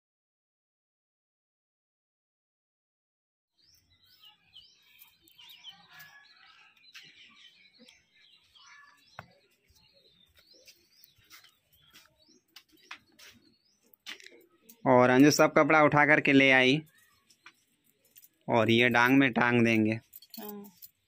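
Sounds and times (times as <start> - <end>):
small birds chirping: 3.6 - 21.0.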